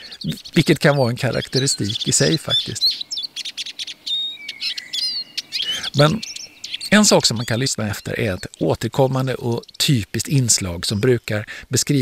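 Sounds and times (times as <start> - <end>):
bird singing: 0.0 - 12.0.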